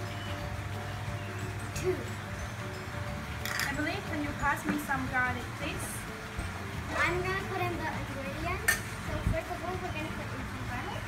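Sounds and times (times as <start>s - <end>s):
kitchenware clinking: 3.4s - 4.8s, 8.6s - 9.0s.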